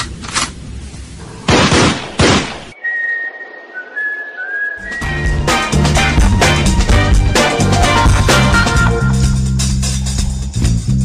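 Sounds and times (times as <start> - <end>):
short whistled notes: 2.8 - 5.8.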